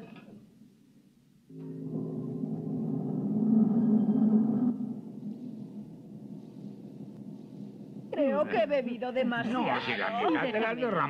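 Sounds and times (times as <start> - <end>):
elevator motor humming: 1.5 - 8.4.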